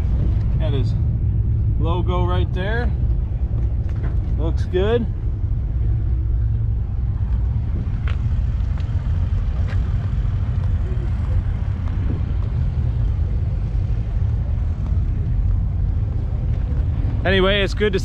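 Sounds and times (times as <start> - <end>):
distant voices: 0.0 - 18.0
wind buffeting microphone: 0.0 - 18.0.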